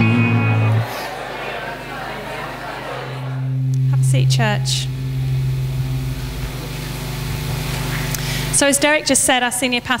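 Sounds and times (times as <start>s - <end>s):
room noise hiss: 0.0s - 10.0s
faint higher tones: 3.1s - 8.1s
low droning hum: 3.1s - 9.3s.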